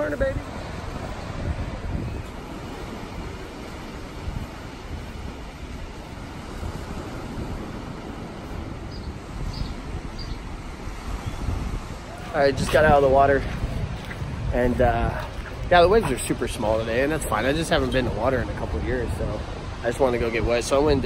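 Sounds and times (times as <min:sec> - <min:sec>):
ocean surf: 0:00.0 - 0:21.0
wind buffeting microphone: 0:00.0 - 0:21.0.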